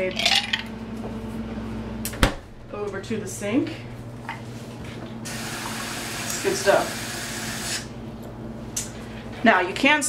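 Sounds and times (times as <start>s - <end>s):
refrigerator low hum: 0.0s - 10.0s
freezer door thudding shut: 2.2s - 2.7s.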